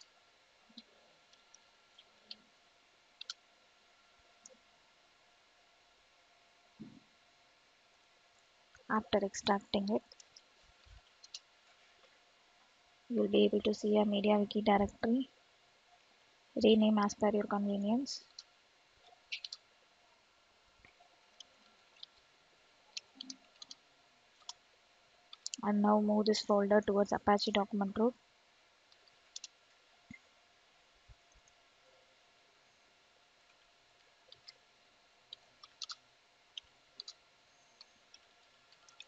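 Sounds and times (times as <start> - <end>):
computer keyboard key clicks: 19.3 - 19.6, 35.6 - 36.0
computer keyboard keystrokes: 19.3 - 19.6, 23.0 - 23.8, 29.3 - 29.5, 35.3 - 36.0.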